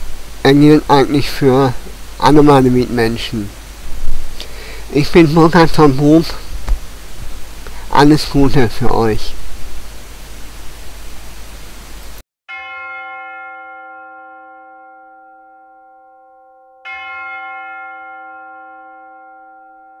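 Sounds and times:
microphone hiss: 0:00.0 - 0:12.2
bell struck and ringing: 0:12.5 - 0:20.0.

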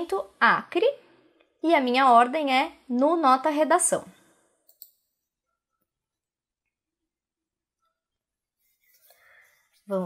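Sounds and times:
breath: 0:09.0 - 0:09.8.

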